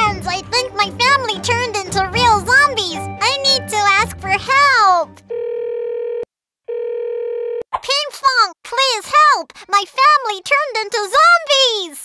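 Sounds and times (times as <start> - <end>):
phone ringing tone: 5.3 - 7.6.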